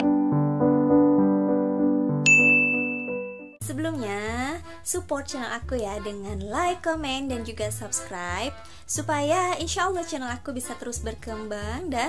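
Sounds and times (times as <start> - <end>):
keyboard background music: 0.0 - 12.0
bright ding: 2.2 - 3.6.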